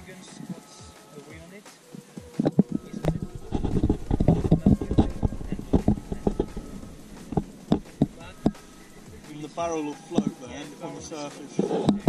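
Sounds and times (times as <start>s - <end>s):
muffled knocks and rubbing: 2.0s - 9.3s, 11.5s - 12.0s.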